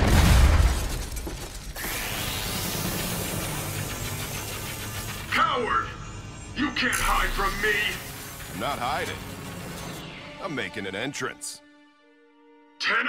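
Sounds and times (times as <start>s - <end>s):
explosion crash with rumble: 0.0s - 1.7s
low dramatic score: 1.8s - 13.0s.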